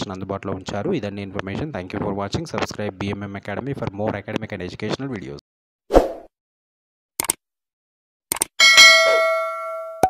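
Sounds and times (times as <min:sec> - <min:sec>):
notification bell ding: 0:08.6 - 0:10.0.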